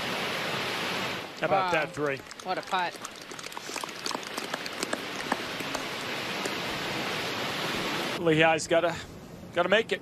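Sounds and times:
gallery applauding: 1.3s - 6.6s.

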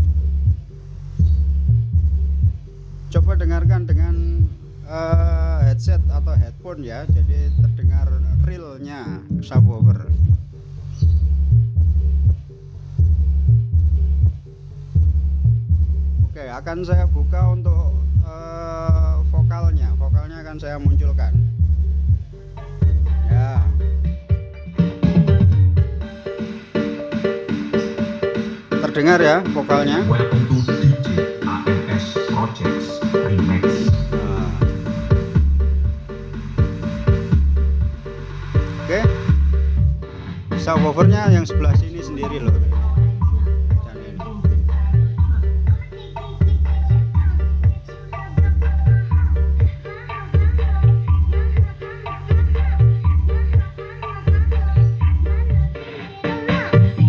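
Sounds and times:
deep bass notes throbbing: 0.0s - 26.1s, 28.8s - 55.8s
song with vocals through speakers: 2.4s - 12.5s, 16.2s - 57.0s.

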